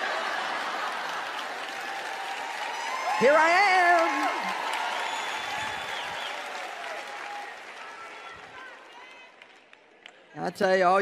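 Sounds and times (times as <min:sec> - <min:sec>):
audience applauding: 0:00.0 - 0:10.2.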